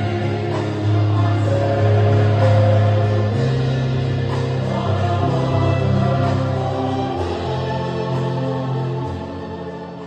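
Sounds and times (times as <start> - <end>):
choir singing sacred music: 0.0 - 10.0
violins: 0.0 - 10.0.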